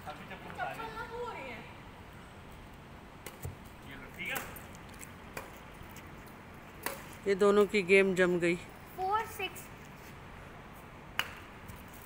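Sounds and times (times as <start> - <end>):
rackets hitting shuttlecock: 4.2 - 4.7, 6.8 - 7.2, 11.1 - 11.5.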